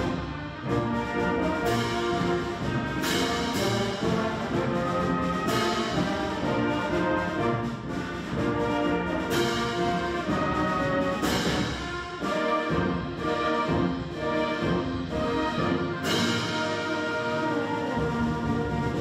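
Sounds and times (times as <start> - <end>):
concert band playing: 0.0 - 19.0.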